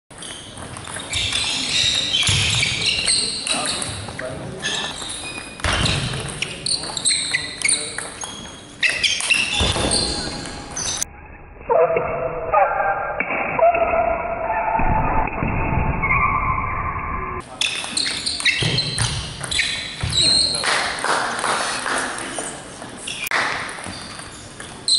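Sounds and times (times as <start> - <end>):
voices in sports hall: 0.1 - 15.4, 16.0 - 24.9.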